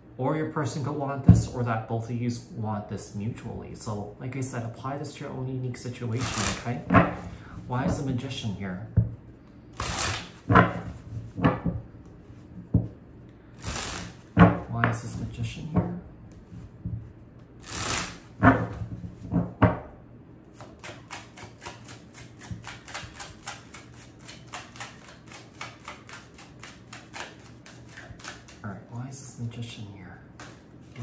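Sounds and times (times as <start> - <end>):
cards clicking while shuffled: 6.2 - 6.8, 13.6 - 14.2, 17.6 - 18.3, 20.6 - 28.6
cards rustling and knocking: 17.6 - 19.8, 20.6 - 28.6.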